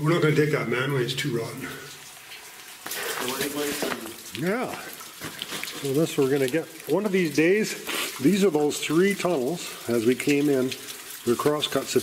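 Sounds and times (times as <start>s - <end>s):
man speaking: 0.0s - 1.9s, 3.1s - 5.0s.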